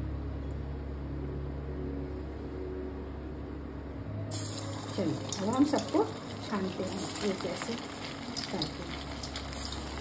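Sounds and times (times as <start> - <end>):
steady low hum: 0.0 - 10.0
bread roll sizzling in hot oil: 4.3 - 10.0.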